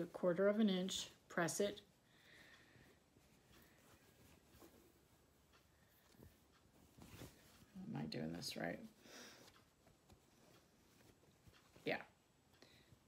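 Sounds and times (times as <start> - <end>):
fabric rustling: 0.0 - 12.2.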